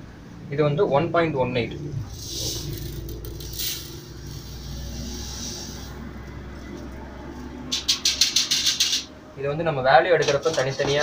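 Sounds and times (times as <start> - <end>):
sand pouring into metal pan: 2.2 - 6.0
sharp rattling clicks: 7.7 - 9.1.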